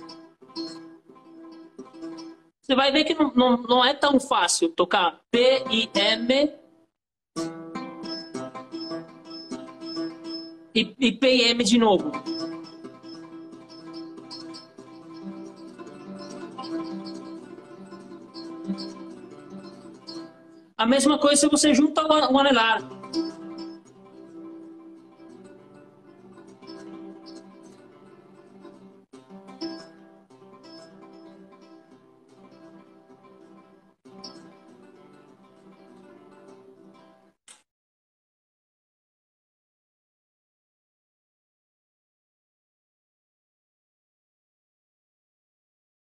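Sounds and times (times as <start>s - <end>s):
fingerstyle classical guitar arpeggio: 7.4s - 10.6s, 12.0s - 20.6s, 22.8s - 37.2s.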